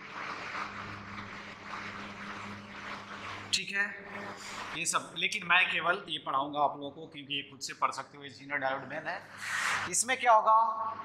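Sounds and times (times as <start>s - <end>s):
low electrical hum: 0.0s - 11.0s
marker scratching on whiteboard: 9.3s - 9.9s.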